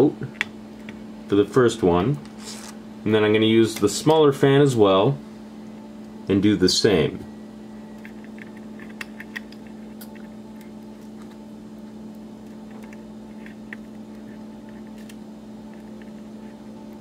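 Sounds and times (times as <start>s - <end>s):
steady electrical hum: 0.0s - 17.0s.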